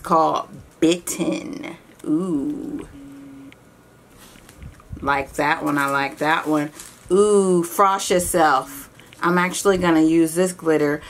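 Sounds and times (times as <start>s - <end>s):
person humming: 2.0s - 3.6s
plastic pouch crinkling: 5.5s - 7.2s.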